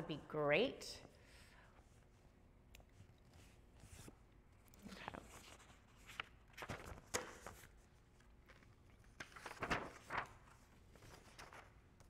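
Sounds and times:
paper rustling: 0:03.2 - 0:12.0.

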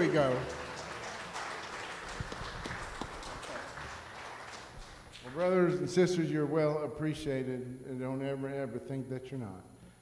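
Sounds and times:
congregation applauding: 0:00.0 - 0:06.0.

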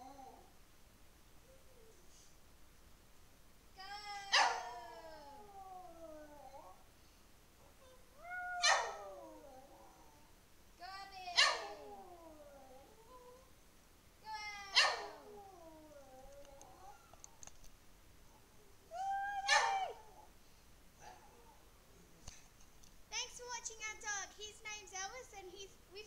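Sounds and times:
dog howling: 0:04.1 - 0:06.8, 0:07.7 - 0:10.3, 0:11.4 - 0:13.5, 0:14.4 - 0:17.2, 0:18.9 - 0:20.3.

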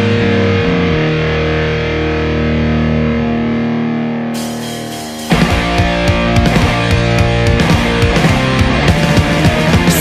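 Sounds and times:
distorted electric guitar chords: 0:00.0 - 0:10.0.

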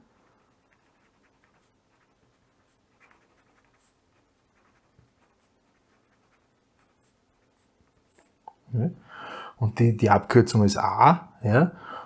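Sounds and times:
pen scratching on paper: 0:00.0 - 0:08.3.

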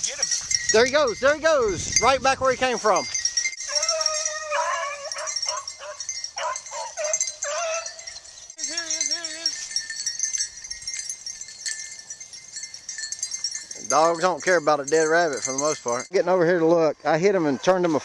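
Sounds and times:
beagles baying: 0:03.0 - 0:10.5
dog howling: 0:03.6 - 0:09.6.

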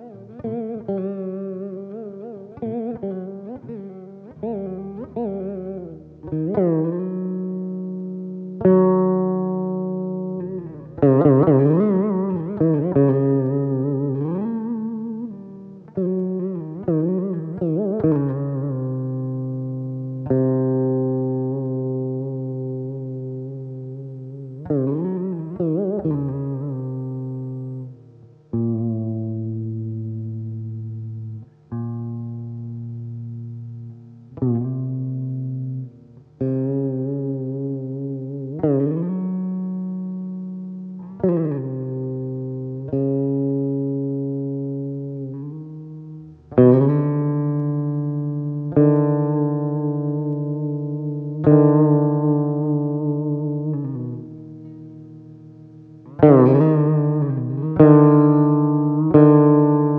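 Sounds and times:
plucked veena notes: 0:00.0 - 0:59.9.

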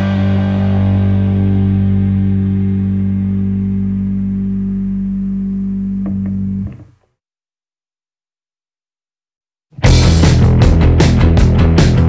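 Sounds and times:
bass and guitar chord ringing: 0:00.0 - 0:06.9, 0:09.8 - 0:12.0
guitar string noises: 0:00.0 - 0:07.0.

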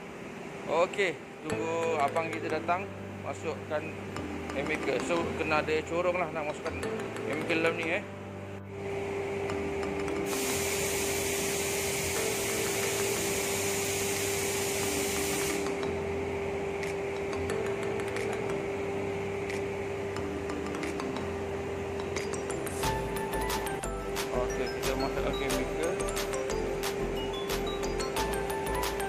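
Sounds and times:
steady hum: 0:00.0 - 0:29.0
hiss of pressure from valve: 0:10.3 - 0:15.7.

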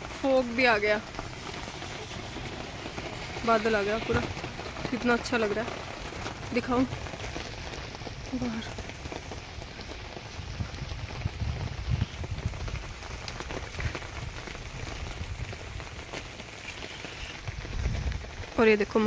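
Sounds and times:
steady rain falling: 0:00.0 - 0:19.0.

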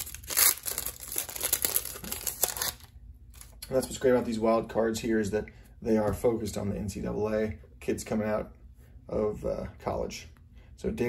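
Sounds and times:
foil wrapper crinkling: 0:00.0 - 0:03.6.

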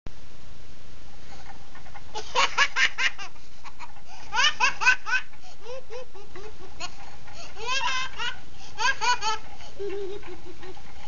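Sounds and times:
young child giggling: 0:02.2 - 0:11.0.

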